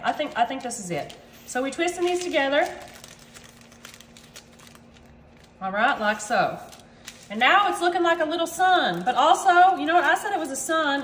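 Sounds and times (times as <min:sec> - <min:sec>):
faint steady hum: 0:00.0 - 0:11.0
parchment paper crinkling: 0:00.0 - 0:11.0.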